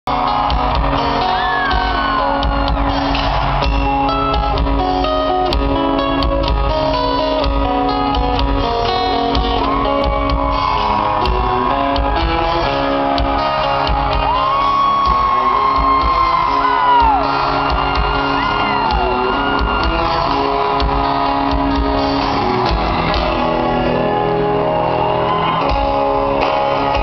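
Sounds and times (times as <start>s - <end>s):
country-rock band playing live: 0.1s - 27.0s.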